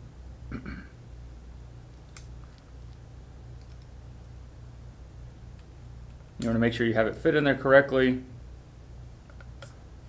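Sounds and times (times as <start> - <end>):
steady low hum: 0.0 - 10.0
faint small clicks: 2.0 - 3.0, 3.6 - 3.9, 9.3 - 9.8.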